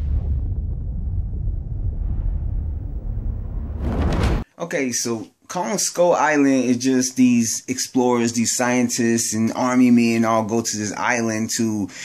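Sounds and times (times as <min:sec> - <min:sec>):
deep bass drone: 0:00.0 - 0:04.4.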